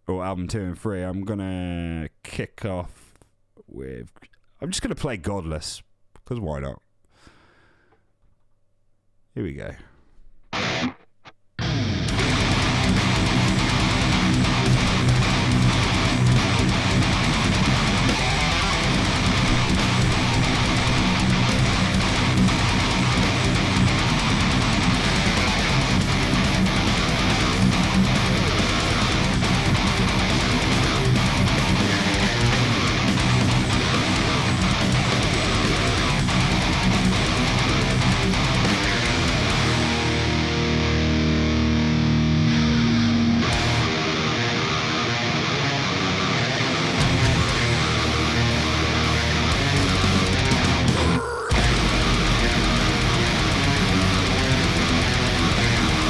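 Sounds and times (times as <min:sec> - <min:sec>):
heavy metal backing track: 0:10.5 - 0:11.0, 0:11.6 - 0:56.0
distorted electric guitar: 0:10.5 - 0:56.0.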